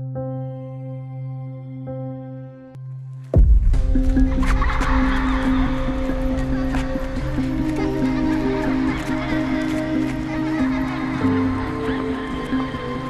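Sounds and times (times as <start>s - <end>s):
music: 0.0s - 13.0s.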